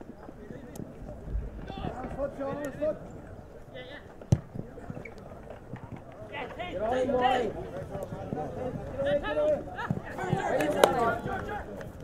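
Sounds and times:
players and spectators shouting: 0:06.2 - 0:11.8.

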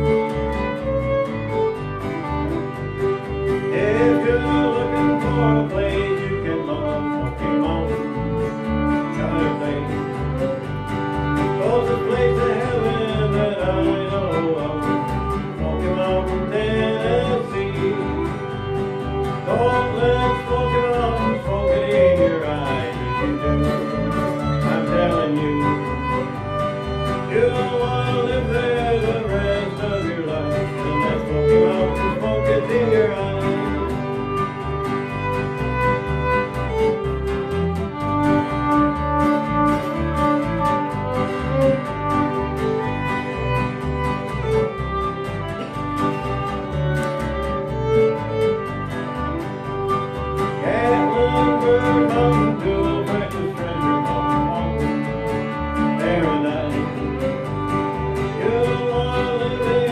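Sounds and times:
bass line: 0:00.0 - 0:59.9
fiddle melody: 0:00.0 - 0:59.9
strummed acoustic guitar: 0:00.0 - 0:59.9.

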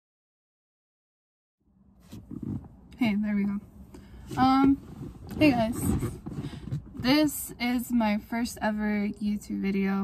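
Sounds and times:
faint low rumbling: 0:01.6 - 0:09.6.

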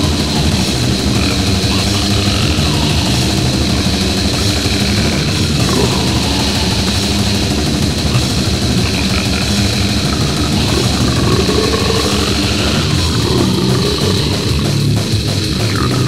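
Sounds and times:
bass guitar: 0:00.0 - 0:16.0
distorted electric guitars: 0:00.0 - 0:16.0
drums playing loud: 0:00.0 - 0:16.0.

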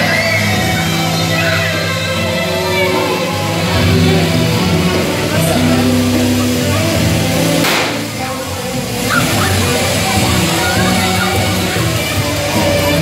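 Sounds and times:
loud dance music: 0:00.0 - 0:13.0
confetti cannon firing: 0:07.5 - 0:08.4.

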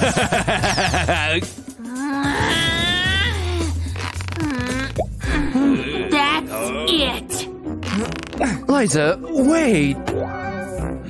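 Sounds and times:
cartoon character grunts and squeaks: 0:02.2 - 0:03.7.

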